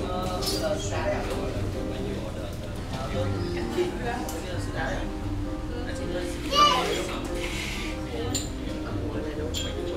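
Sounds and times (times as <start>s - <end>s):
music: 0.0s - 9.9s.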